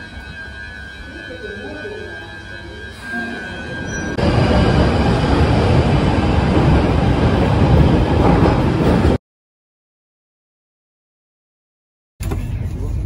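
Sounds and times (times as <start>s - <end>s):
thin steady whine: 0.0s - 4.2s
train wheel and motor rush: 0.0s - 9.2s.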